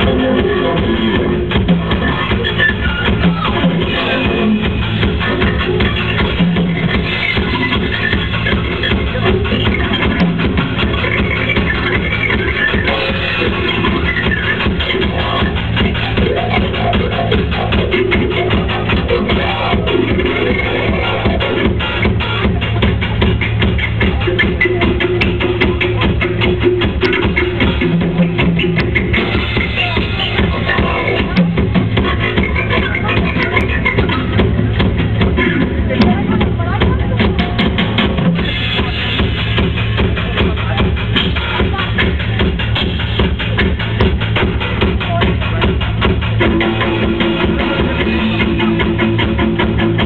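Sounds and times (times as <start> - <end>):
drums playing a steady beat: 0.0 - 50.0.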